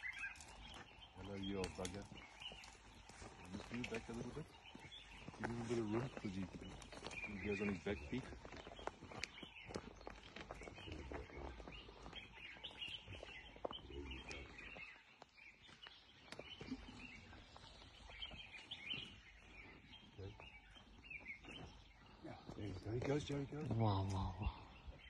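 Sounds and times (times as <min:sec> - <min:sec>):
bird chirps: 0:00.0 - 0:25.0.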